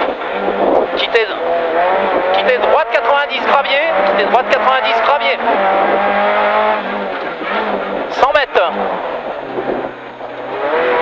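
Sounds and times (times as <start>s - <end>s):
rally car engine running hard: 0.0s - 11.0s.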